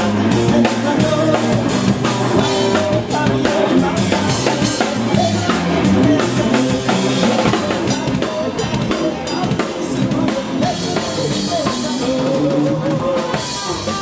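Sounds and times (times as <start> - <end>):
drum kit played with sticks: 0.0 - 14.0
electric guitars playing: 0.0 - 14.0.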